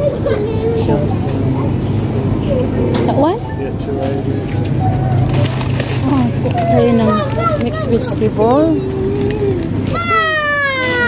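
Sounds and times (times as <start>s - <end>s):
children chattering: 0.0s - 11.0s
steady low hum: 0.0s - 11.0s.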